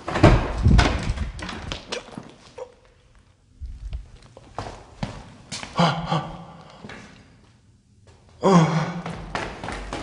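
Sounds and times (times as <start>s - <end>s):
footsteps on a hard floor: 3.7s - 5.8s, 9.0s - 10.0s.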